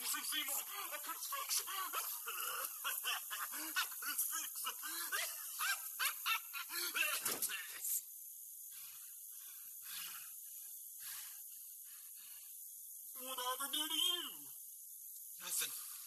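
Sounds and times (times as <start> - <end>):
man laughing hysterically and wheezing: 0.0 - 7.4
faint hiss: 0.0 - 16.0.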